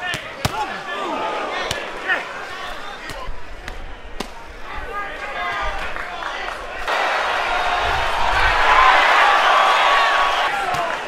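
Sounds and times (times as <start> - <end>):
voices shouting: 0.0 - 11.0.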